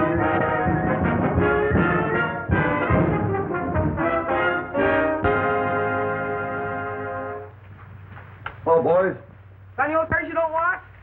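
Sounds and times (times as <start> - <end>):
orchestral brass chord: 0.0 - 7.5
soundtrack hiss: 0.0 - 11.0.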